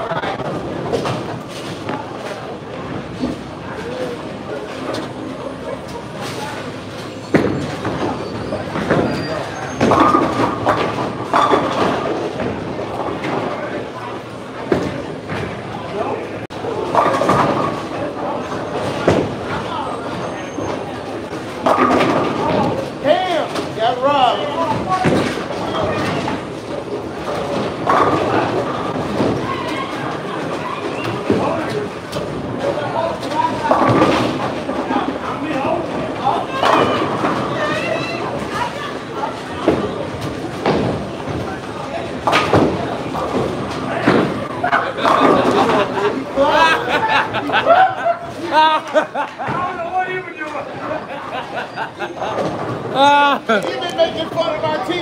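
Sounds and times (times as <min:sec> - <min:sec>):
bowling balls rolling on wooden lanes: 0:00.0 - 0:55.0
people talking: 0:01.8 - 0:26.4, 0:27.4 - 0:32.0, 0:32.6 - 0:55.0
bowling pins crashing: 0:21.3 - 0:23.8, 0:39.5 - 0:47.5.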